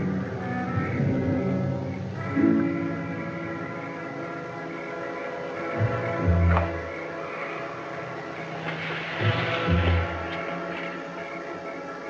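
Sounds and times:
suspense music sustained chord: 0.0s - 12.0s.

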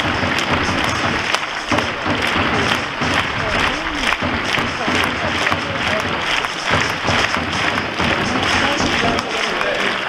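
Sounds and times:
music over public address: 0.0s - 10.0s
stadium crowd clapping: 0.0s - 10.0s.

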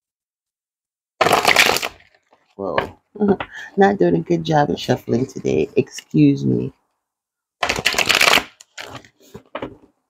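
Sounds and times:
cards being shuffled: 7.6s - 9.8s.

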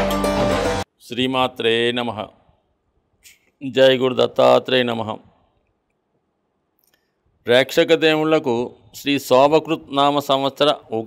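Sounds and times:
man speaking: 1.0s - 2.4s, 3.3s - 5.3s, 7.4s - 11.0s.

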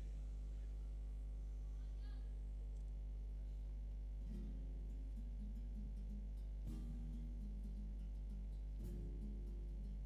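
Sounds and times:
low electrical hum: 0.0s - 10.0s
faint plucked-string music: 4.1s - 10.0s.

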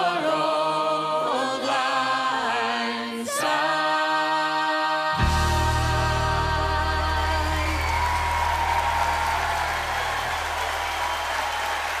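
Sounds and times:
audience applauding: 7.1s - 12.0s.

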